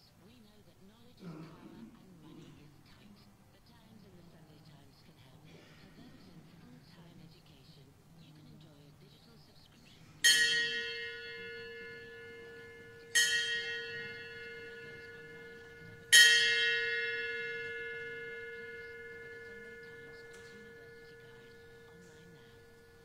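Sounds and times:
bell ringing: 0:10.2 - 0:23.0.

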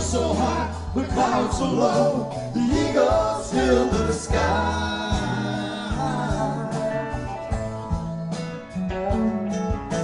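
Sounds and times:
person singing: 0:00.0 - 0:07.3
electric guitar: 0:00.0 - 0:10.0
low bass notes: 0:00.0 - 0:10.0.

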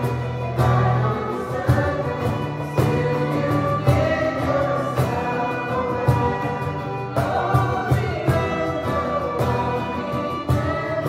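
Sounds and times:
strummed acoustic guitar: 0:00.0 - 0:11.0
young voices singing worship song: 0:00.0 - 0:11.0.

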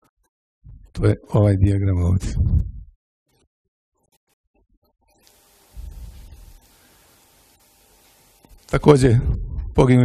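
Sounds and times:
microphone handling rumble: 0:00.6 - 0:01.1, 0:02.1 - 0:02.9, 0:05.8 - 0:06.6, 0:09.0 - 0:09.9
faint sound system hum: 0:05.0 - 0:10.0
steady hiss: 0:05.2 - 0:09.0.

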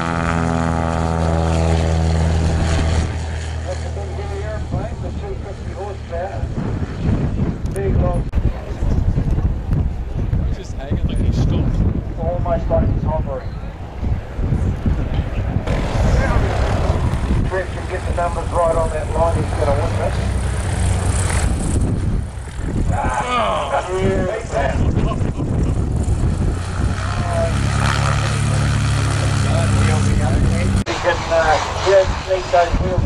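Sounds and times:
light aircraft engine and propeller: 0:00.0 - 0:33.0
wind buffeting microphone: 0:00.0 - 0:33.0
voices talking: 0:15.4 - 0:21.3, 0:22.9 - 0:26.0, 0:27.0 - 0:33.0.

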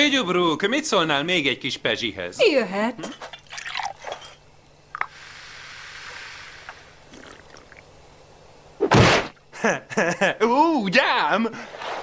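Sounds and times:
champagne pouring and fizzing: 0:03.3 - 0:07.9.

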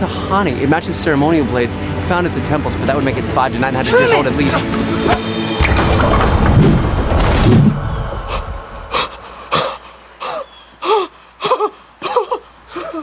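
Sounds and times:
dense rush of noise: 0:03.6 - 0:10.3
voiced panting breaths: 0:08.3 - 0:13.0.

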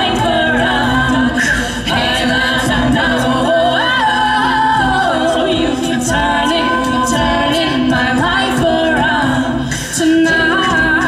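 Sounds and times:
women singing a cappella: 0:00.0 - 0:11.0.

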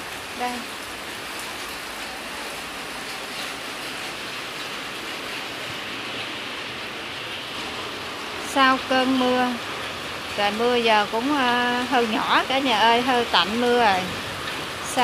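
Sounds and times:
rain falling steadily: 0:00.0 - 0:15.0.

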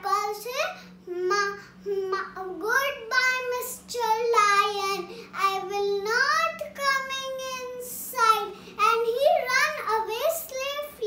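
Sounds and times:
girl singing: 0:00.0 - 0:11.0.

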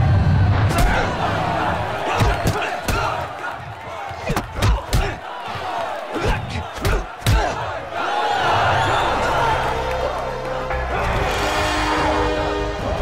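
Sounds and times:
crowd shouting and cheering: 0:00.0 - 0:13.0.

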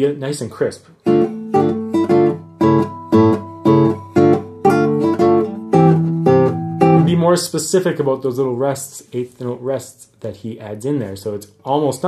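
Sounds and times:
classical guitar staccato notes: 0:01.0 - 0:07.2.

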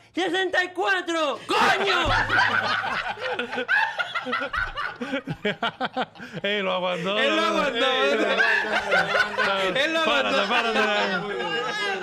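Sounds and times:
men laughing together: 0:01.5 - 0:12.0.

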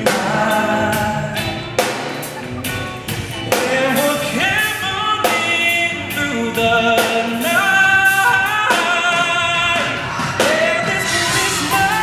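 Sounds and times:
man singing: 0:00.0 - 0:02.0, 0:03.4 - 0:12.0
band playing: 0:00.0 - 0:12.0.

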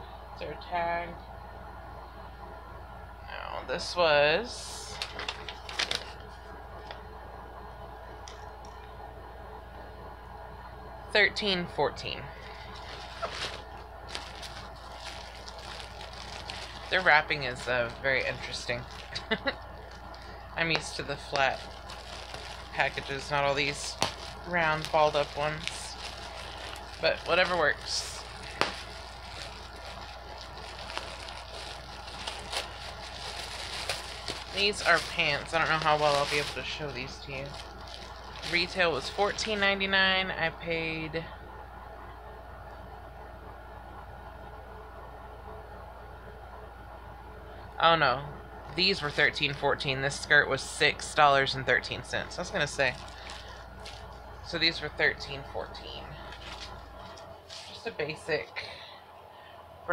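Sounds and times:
low hum: 0:00.0 - 0:59.9
packaging crinkling: 0:04.9 - 0:06.4, 0:12.4 - 0:39.9, 0:52.4 - 0:54.6, 0:56.2 - 0:57.9.

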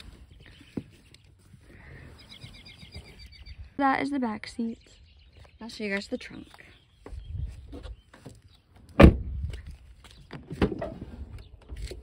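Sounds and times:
loud thump: 0:09.0 - 0:09.3.

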